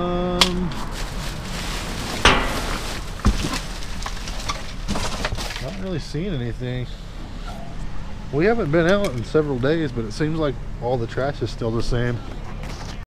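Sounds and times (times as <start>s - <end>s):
rustling trash bags and cardboard: 0.4s - 6.8s
sharp knocks: 2.2s - 3.4s.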